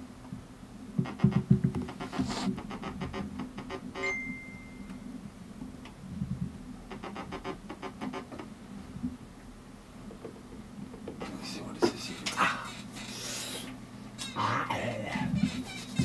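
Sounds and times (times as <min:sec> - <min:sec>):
steady low hum: 0:08.5 - 0:16.0
high synthesizer tone: 0:14.2 - 0:16.0.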